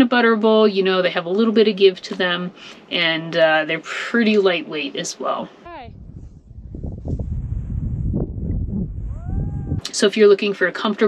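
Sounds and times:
wind buffeting microphone: 5.6s - 10.1s.

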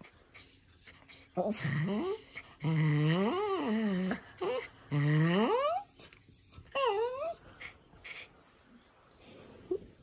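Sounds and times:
small dog whining: 1.9s - 7.4s.

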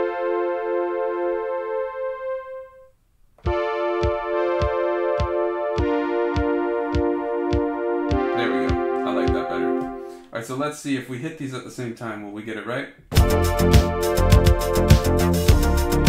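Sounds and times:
electric piano synth chords: 0.0s - 2.8s, 3.4s - 10.2s, 13.2s - 16.0s
steady kick drum: 3.4s - 9.5s, 13.2s - 16.0s.

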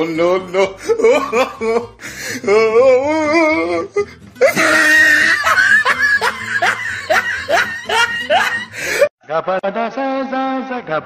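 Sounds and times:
high-pitched laughter: 4.4s - 9.1s.

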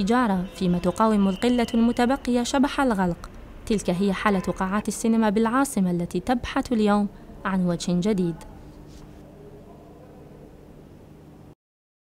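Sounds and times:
faint low hum: 0.0s - 11.6s.

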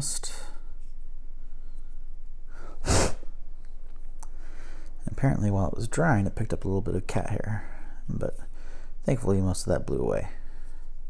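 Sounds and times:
person sneezing: 2.8s - 3.3s.

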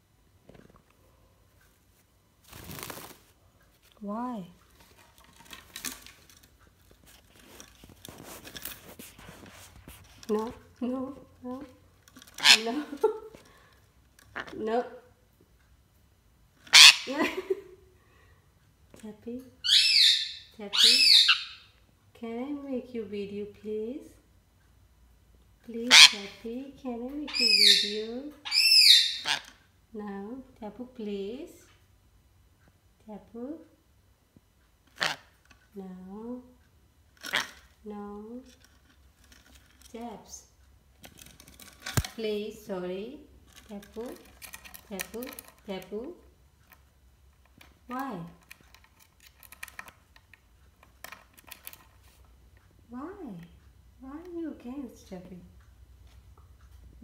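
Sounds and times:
parakeet clicks and scratches: 2.5s - 10.8s, 11.5s - 14.6s, 37.1s - 37.8s, 38.4s - 40.2s, 40.9s - 42.4s, 43.3s - 52.6s
parakeet screeching: 12.4s - 12.8s, 16.7s - 17.1s, 19.6s - 21.7s, 25.9s - 26.4s, 27.3s - 29.5s, 35.0s - 35.3s, 37.3s - 37.6s.

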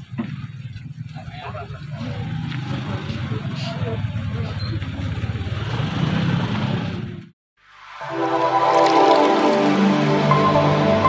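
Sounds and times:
vehicle engine running: 0.0s - 7.2s
faint crowd voices: 1.0s - 5.4s
outro music: 7.6s - 11.0s.

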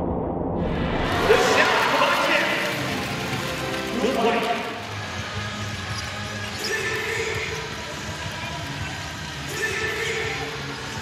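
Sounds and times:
arena crowd noise: 0.8s - 11.0s.

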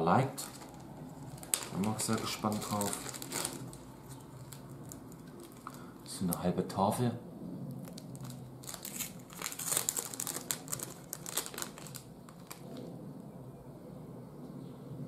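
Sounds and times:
plastic bag crinkling: 0.3s - 6.2s, 7.8s - 12.9s.

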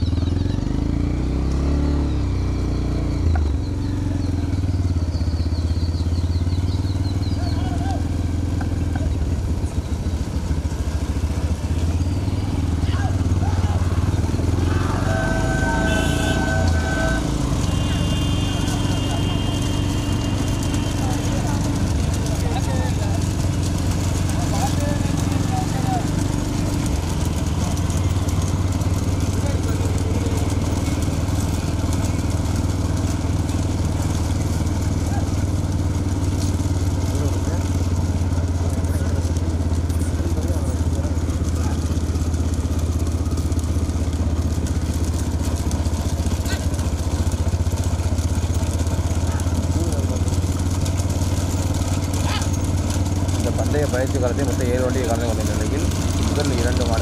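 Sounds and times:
motorcycle engines droning: 0.0s - 57.0s
people's voices: 11.3s - 43.9s, 48.7s - 57.0s.

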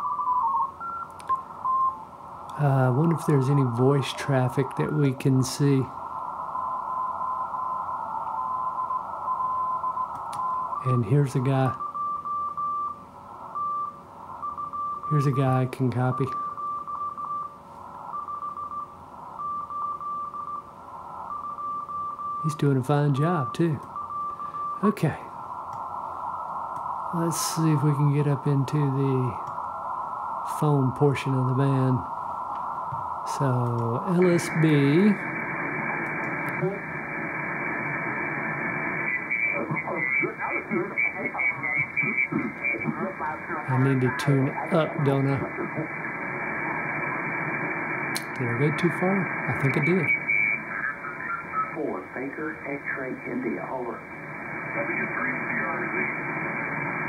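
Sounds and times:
faint low hum: 0.0s - 57.0s
morse code tone keyed in dots and dashes: 0.0s - 57.0s
faint receiver hiss: 1.0s - 9.2s, 10.0s - 11.8s, 22.4s - 40.3s, 41.1s - 53.1s
mistuned single-sideband voice: 39.1s - 45.9s.

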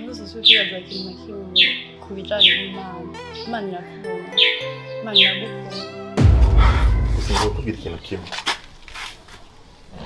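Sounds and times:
soft background music: 0.0s - 6.2s
bird chirping: 0.4s - 6.0s.

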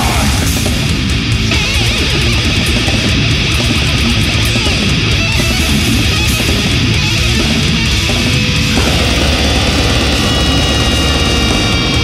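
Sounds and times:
death metal music: 0.0s - 12.0s.

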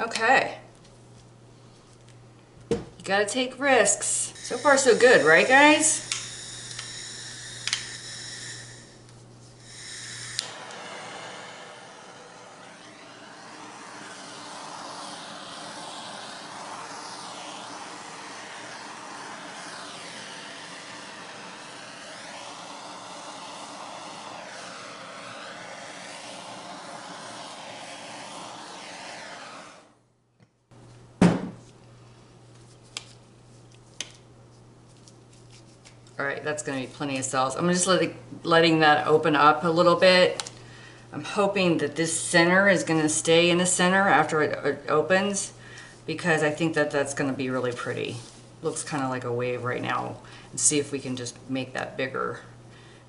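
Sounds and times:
blowtorch flame hissing: 3.8s - 30.0s
blowtorch click: 4.4s - 29.8s, 40.3s - 40.6s
loud knock: 31.2s - 31.6s.

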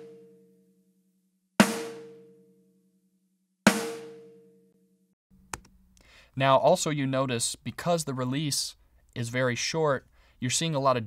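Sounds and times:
snare drum hits: 1.6s - 2.1s, 3.7s - 4.3s.

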